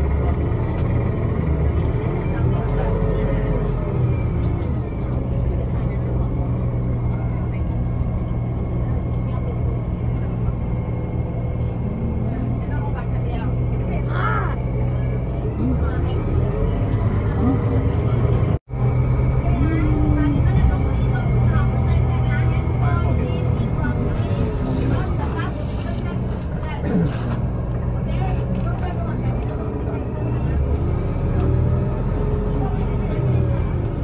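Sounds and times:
bus rumble from inside: 0.0s - 34.0s
indistinct passenger chatter: 0.0s - 34.0s.

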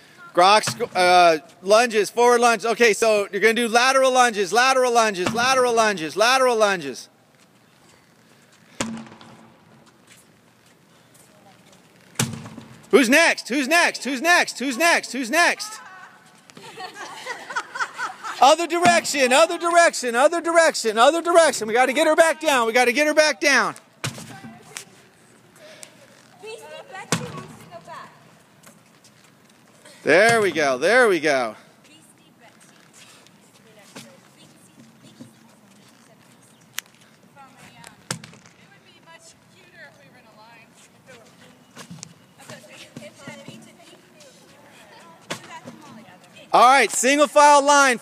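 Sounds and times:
faint outdoor background: 0.0s - 48.0s
tire thudding on concrete: 5.1s - 5.8s, 8.7s - 10.0s, 12.1s - 13.0s, 24.0s - 25.0s, 27.0s - 28.1s, 30.2s - 30.7s
people talking: 13.0s - 16.0s, 18.4s - 25.0s, 42.4s - 48.0s.

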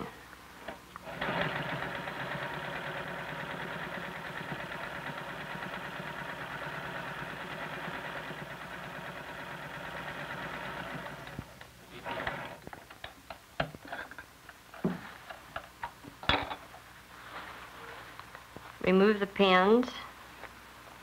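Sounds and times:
electric sewing machine running: 1.0s - 12.6s.

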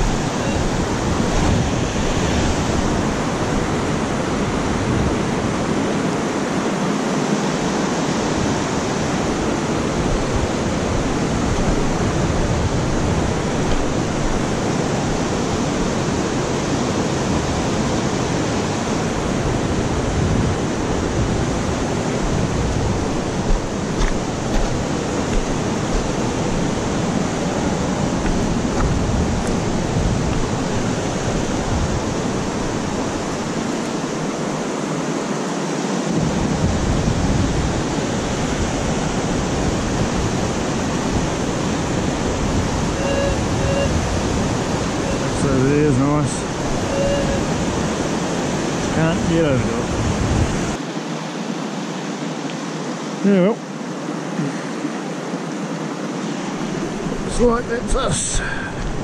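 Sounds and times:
river water rushing: 0.0s - 59.0s.

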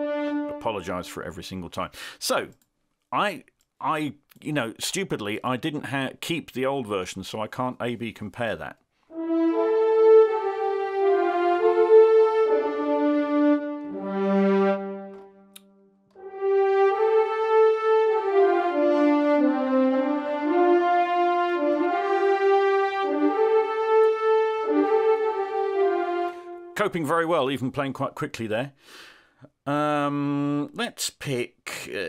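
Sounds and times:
horns and strings legato melody: 0.0s - 1.7s, 9.1s - 27.6s.

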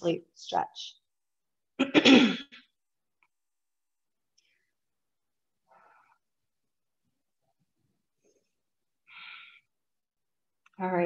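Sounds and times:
woman clearing her throat: 1.8s - 2.6s.

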